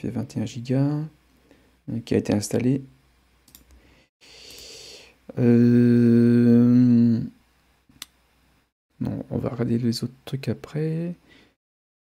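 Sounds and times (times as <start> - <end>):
soft steady hiss: 0.0 - 11.5
computer mouse clicks: 3.5 - 3.8.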